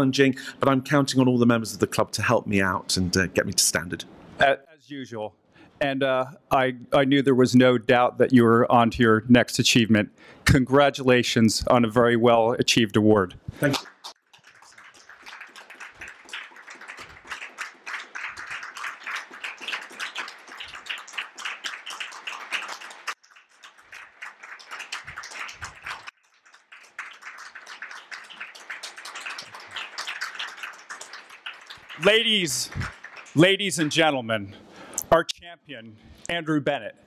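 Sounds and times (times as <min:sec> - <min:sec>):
audience applauding: 0:13.6 - 0:34.2.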